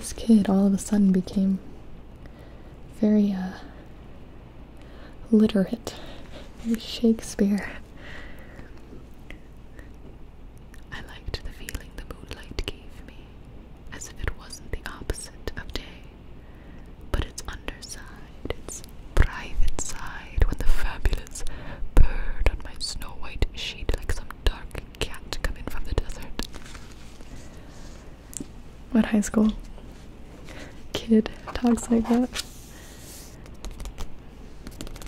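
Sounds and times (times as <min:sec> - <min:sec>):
woman whispering: 0:05.3 - 0:07.9, 0:10.8 - 0:16.1, 0:17.1 - 0:26.5, 0:30.9 - 0:32.4.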